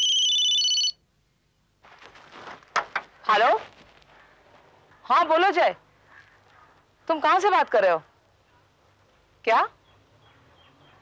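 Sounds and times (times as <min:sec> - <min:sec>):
electronic telephone ringtone: 0:00.0 - 0:01.0.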